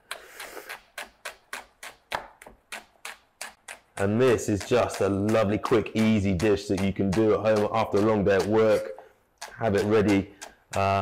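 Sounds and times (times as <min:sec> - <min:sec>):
knife tapping on wooden board: 0:04.0 - 0:11.0.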